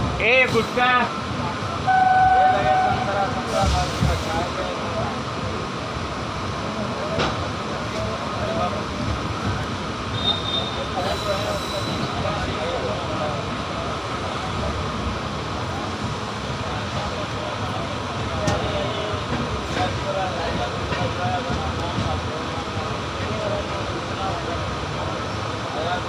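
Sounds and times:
faint voices: 0.0 - 26.0
train wheels rumbling on rails: 0.0 - 26.0.

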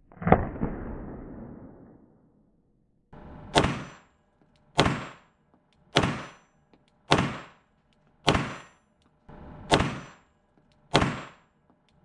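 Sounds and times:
pistol shot cracking: 3.5 - 4.0, 4.8 - 5.3, 6.0 - 6.4, 7.1 - 7.6, 8.3 - 8.7, 9.7 - 10.2, 10.9 - 11.5.

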